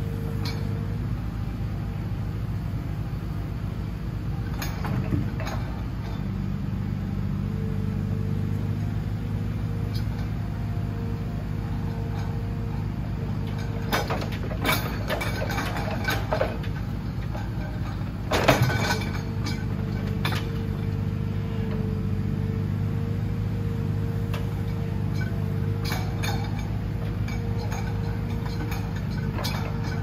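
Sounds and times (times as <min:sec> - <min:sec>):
diesel engine running: 0:00.0 - 0:30.0
hydraulic crane working: 0:00.0 - 0:30.0
logs clunking: 0:11.7 - 0:22.6, 0:24.3 - 0:30.0.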